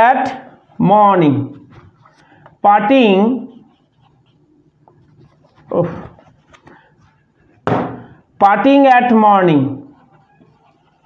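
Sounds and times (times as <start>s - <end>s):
marker strokes on whiteboard: 0.3s - 7.7s, 9.8s - 11.0s.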